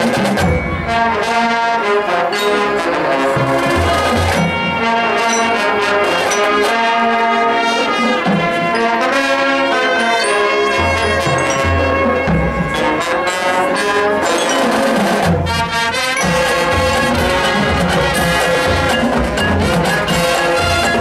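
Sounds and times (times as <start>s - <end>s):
marching band brass chords: 0.0s - 21.0s.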